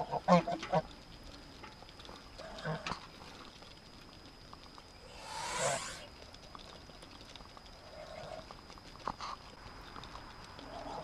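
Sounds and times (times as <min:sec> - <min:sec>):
geese bills clicking in feed: 0:00.0 - 0:11.0
goose murmur: 0:10.6 - 0:11.0.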